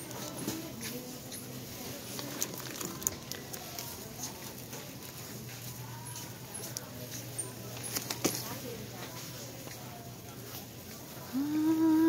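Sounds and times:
shopping cart wheels rattling: 0.0s - 10.9s
faint voices: 0.0s - 12.0s.

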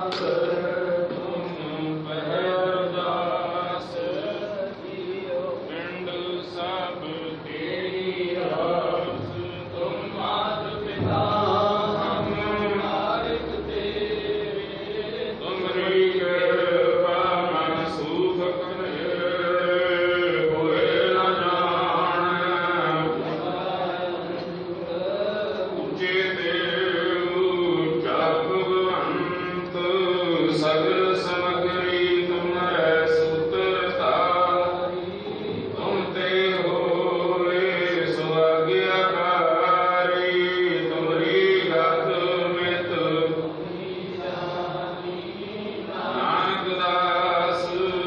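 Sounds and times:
devotional chanting: 0.0s - 48.0s.

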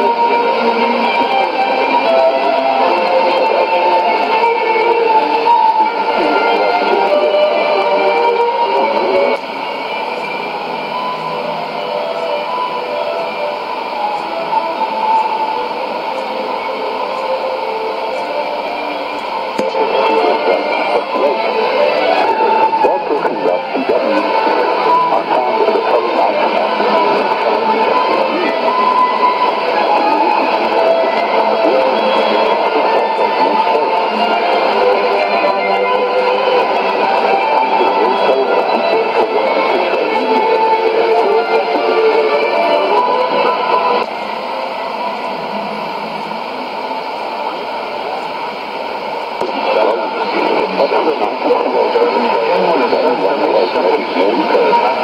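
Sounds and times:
guitar music on am radio: 19.6s - 44.0s, 49.4s - 55.0s.

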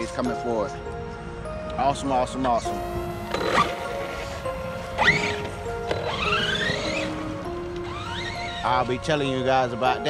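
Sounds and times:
background music: 0.0s - 10.0s
electric motor whine: 2.7s - 9.3s.

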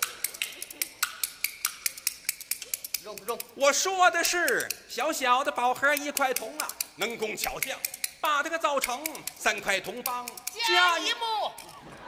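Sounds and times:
bamboo clappers clacking: 0.0s - 11.8s.

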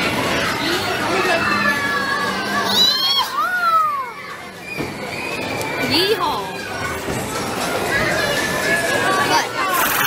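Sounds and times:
murmur of crowd: 0.0s - 10.0s.

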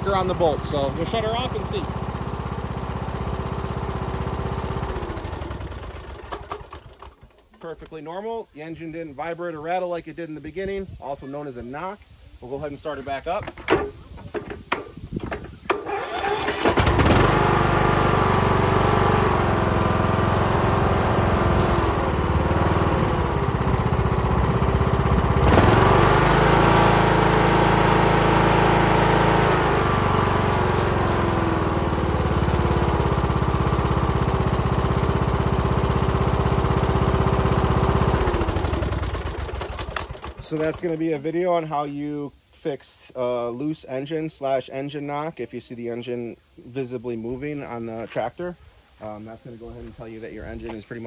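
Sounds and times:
riding lawn mower engine: 0.0s - 7.9s, 15.2s - 41.3s.

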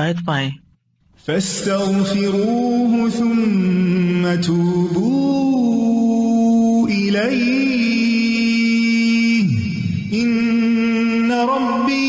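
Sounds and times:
man reciting melodically: 1.2s - 12.0s.

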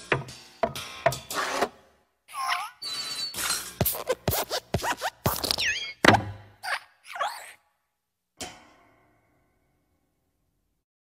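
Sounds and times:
squeaky springy creaks: 2.6s - 4.2s.

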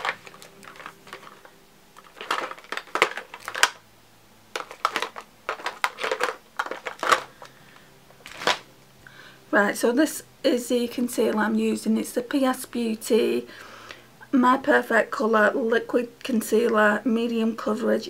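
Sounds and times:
plastic containers clicking and clattering: 0.0s - 3.8s, 4.5s - 7.5s, 8.2s - 8.7s.

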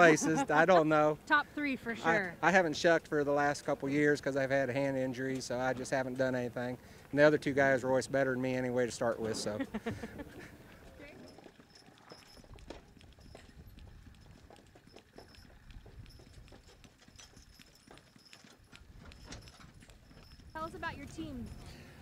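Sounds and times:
horse hoofbeats: 0.0s - 22.0s.

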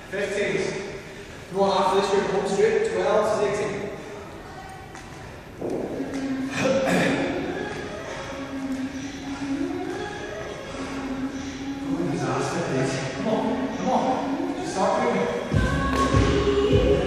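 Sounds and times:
voice echoing in a hall: 0.0s - 17.0s.

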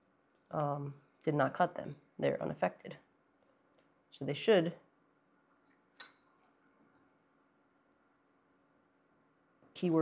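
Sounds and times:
metal tweezers clinking on tools: 5.9s - 6.4s.

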